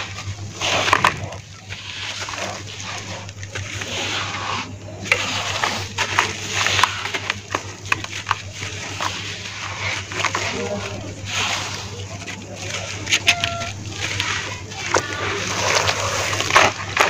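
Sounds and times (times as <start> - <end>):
steady low hum: 0.0 - 17.0
wet squelching and sloshing: 0.0 - 17.0.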